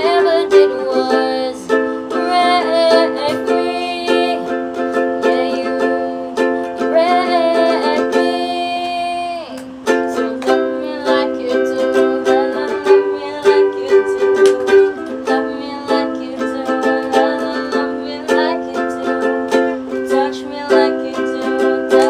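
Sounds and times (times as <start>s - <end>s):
ukulele strumming chords: 0.0s - 22.0s.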